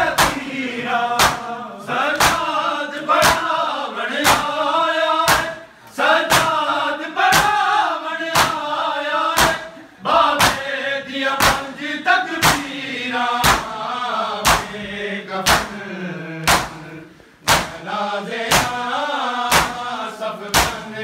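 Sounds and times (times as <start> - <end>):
men chanting a lament: 0.0 - 21.0.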